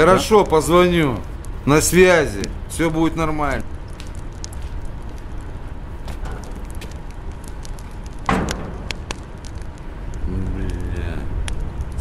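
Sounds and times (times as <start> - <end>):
low background rumble: 0.0 - 12.0
door banging shut: 8.3 - 9.0.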